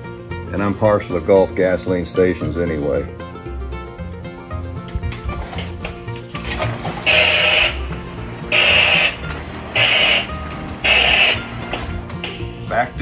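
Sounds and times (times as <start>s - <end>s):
background guitar music: 0.0s - 13.0s.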